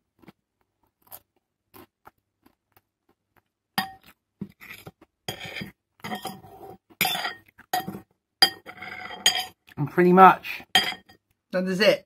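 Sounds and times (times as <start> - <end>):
knife and fork scraping a plate: 3.8 - 9.6.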